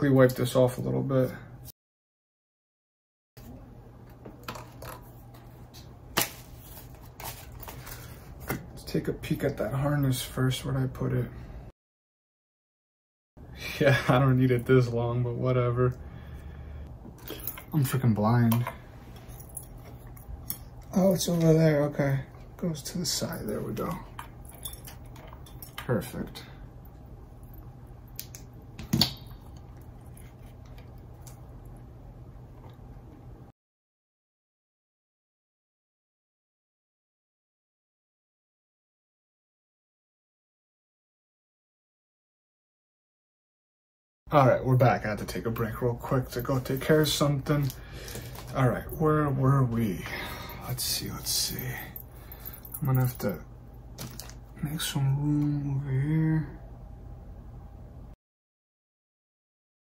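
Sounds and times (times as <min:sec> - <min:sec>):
steady low hum: 0:13.4 - 0:33.5, 0:44.3 - 0:58.2.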